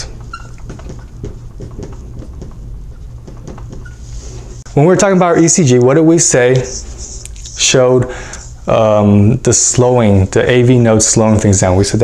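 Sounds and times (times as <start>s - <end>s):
marker squeaks: 0.0s - 4.7s
marker writing on whiteboard: 0.0s - 4.7s.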